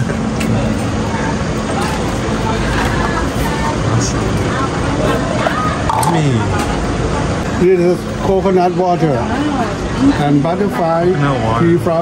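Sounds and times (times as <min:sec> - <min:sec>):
faint voices: 0:00.0 - 0:12.0.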